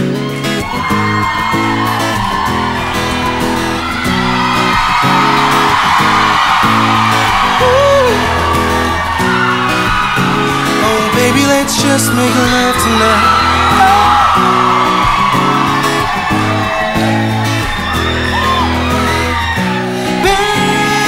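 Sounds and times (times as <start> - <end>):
audience cheering and whooping: 0.0 - 21.0
strummed acoustic guitar chords: 0.0 - 21.0.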